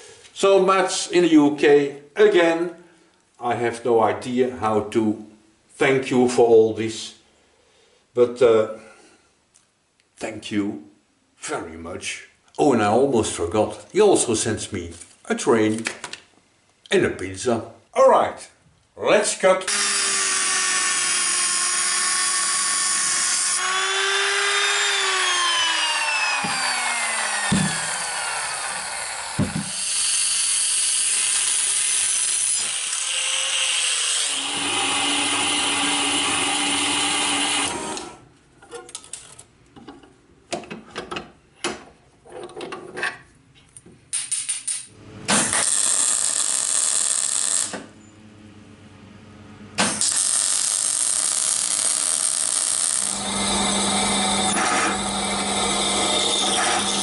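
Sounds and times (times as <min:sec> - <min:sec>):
angle grinder on metal: 0:19.7 - 0:38.2, 0:45.3 - 0:47.8, 0:49.8 - 0:57.0
metal-cutting bandsaw humming: 0:19.7 - 0:38.2, 0:49.8 - 0:57.0
hissing welding arc: 0:45.3 - 0:47.8, 0:49.8 - 0:53.1.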